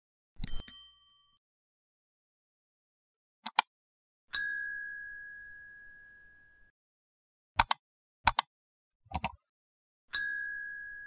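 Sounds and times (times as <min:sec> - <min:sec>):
mouse double click: 0:03.4 - 0:03.7, 0:07.6 - 0:08.5, 0:09.1 - 0:09.4
bell ding: 0:04.3 - 0:06.6, 0:10.1 - 0:11.0.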